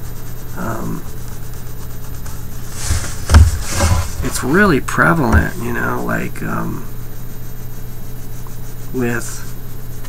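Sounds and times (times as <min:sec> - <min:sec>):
pencil scratching on paper: 0:00.0 - 0:10.0
steady low hum: 0:00.0 - 0:10.0.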